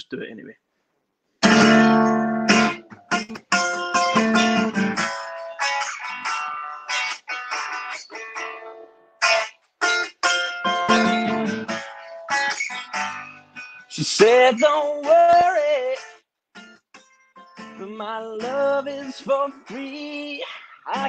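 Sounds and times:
guitar strumming chords: 1.4 - 21.0.

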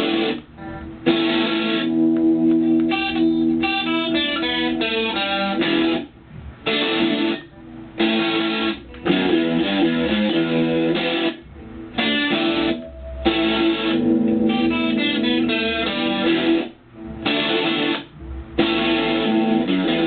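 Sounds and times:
electric guitar notes and riffs: 0.0 - 20.0.

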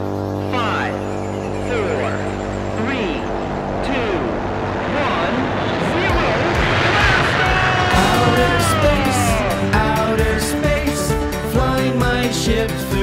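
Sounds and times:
music: 0.0 - 4.9, 6.2 - 13.0
countdown voice: 0.4 - 6.4.

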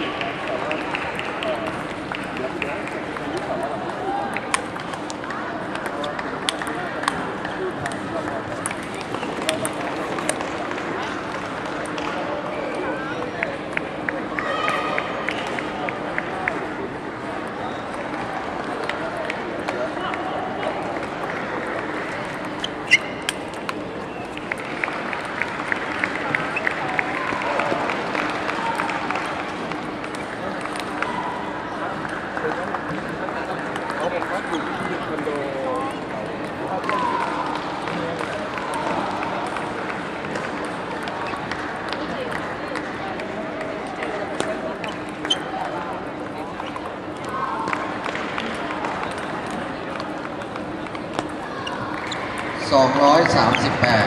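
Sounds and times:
babble of voices: 0.0 - 54.0.

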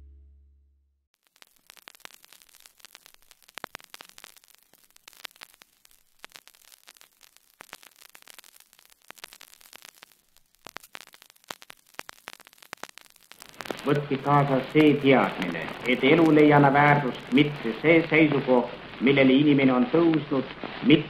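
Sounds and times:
record surface crackle: 1.2 - 21.0.

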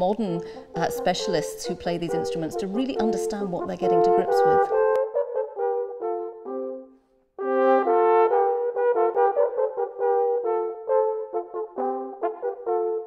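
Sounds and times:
natural horns playing a duet: 0.2 - 13.0.

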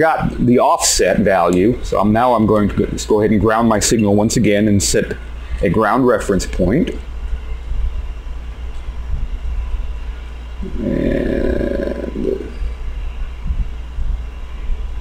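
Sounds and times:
low hum: 0.0 - 15.0
muffled voice murmur: 10.6 - 12.7.

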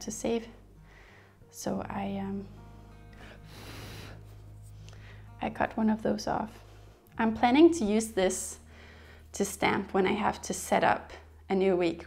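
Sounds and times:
faint background music: 0.0 - 12.0
soft intake of breath: 3.2 - 5.3.

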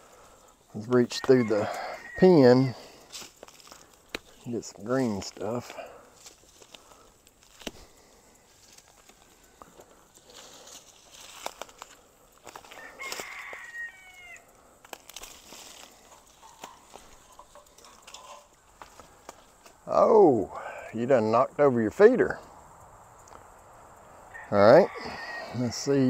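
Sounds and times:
faint chicken calls: 0.0 - 4.6, 6.7 - 14.8, 15.4 - 19.3, 23.2 - 26.0
weeds snapping and rustling: 3.0 - 13.6, 14.8 - 19.8.

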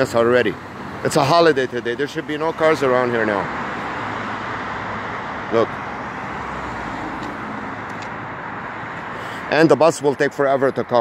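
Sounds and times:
cars driving along street: 0.0 - 11.0.

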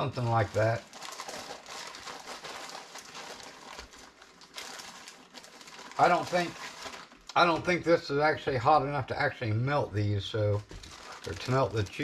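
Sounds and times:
plastic bag crinkling: 0.0 - 7.5, 10.5 - 12.0.

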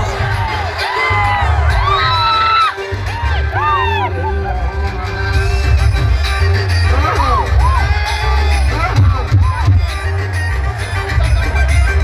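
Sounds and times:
crowd cheering and whooping: 0.0 - 5.1, 7.6 - 8.8
live music with pulsing bass: 0.0 - 12.0.

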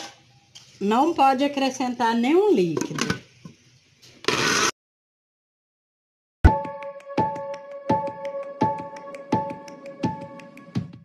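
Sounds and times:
electric blender motor chopping: 4.2 - 4.7.

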